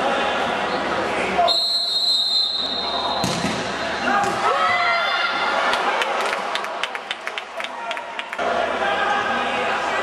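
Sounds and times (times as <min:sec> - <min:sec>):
referee's whistle blast: 0:01.5 - 0:03.4
ball being kicked: 0:03.2 - 0:03.6.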